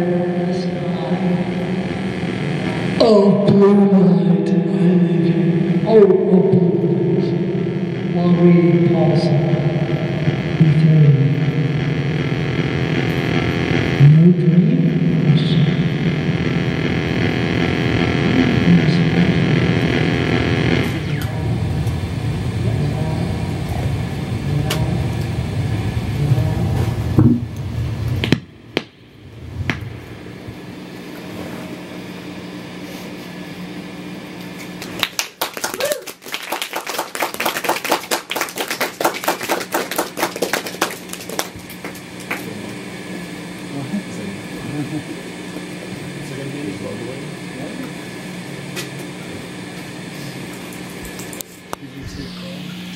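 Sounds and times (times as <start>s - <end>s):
steady electrical hum: 0.0s - 52.9s.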